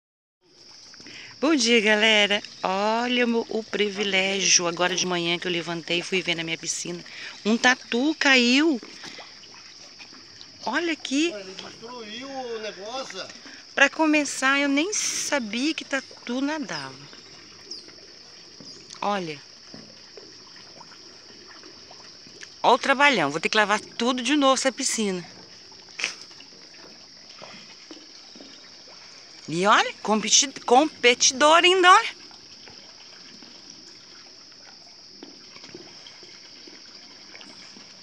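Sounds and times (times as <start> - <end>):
pool water trickling and splashing: 0.4 - 38.0
steady high-pitched hiss: 0.4 - 38.0.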